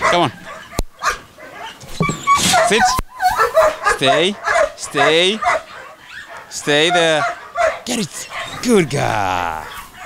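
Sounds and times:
dog whining: 0.5s - 4.7s
man speaking a command: 2.6s - 3.0s, 4.0s - 5.6s, 6.5s - 9.8s.

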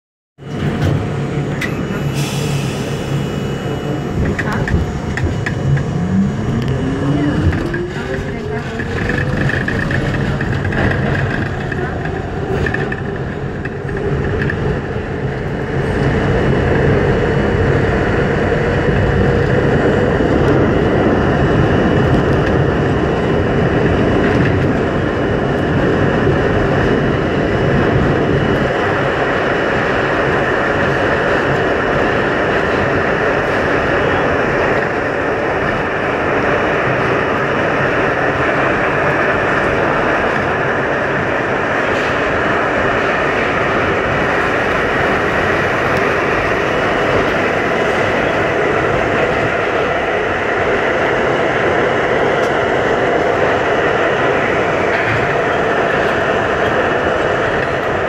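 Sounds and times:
subway traction motors whining: 0.4s - 58.0s
train wheels rumbling on rail: 0.4s - 58.0s.

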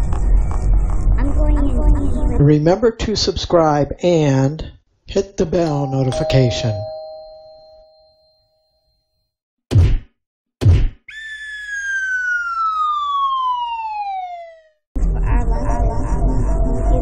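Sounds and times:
bell ringing: 5.7s - 9.1s
cartoon punch hits: 9.7s - 11.1s
whistle sliding down in pitch: 11.1s - 14.7s.

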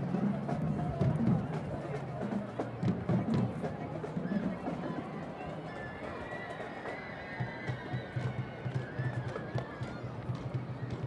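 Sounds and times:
low drum beats: 0.0s - 4.7s.

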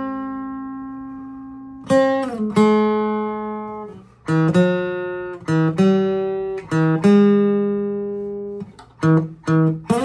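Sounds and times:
classical guitar chords: 0.0s - 10.0s.

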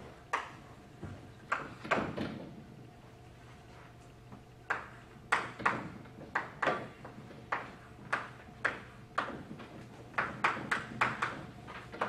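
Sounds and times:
chalk tapping and scraping on blackboard: 4.7s - 12.0s.

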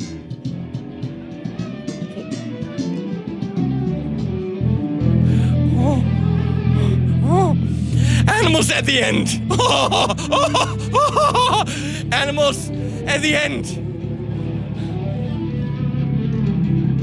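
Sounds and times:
electric bass guitar notes: 0.0s - 17.0s
man saying oh: 5.7s - 6.1s, 7.1s - 7.6s, 8.2s - 10.8s, 11.4s - 13.8s.

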